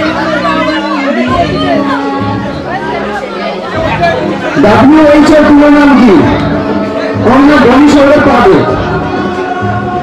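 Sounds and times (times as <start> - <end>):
man talking into a microphone: 4.0 - 6.5, 7.2 - 8.8.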